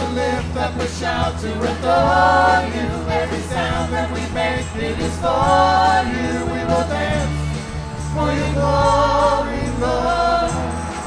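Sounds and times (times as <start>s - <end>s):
steady bass line: 0.0s - 11.0s
worship band and singers: 0.0s - 11.0s.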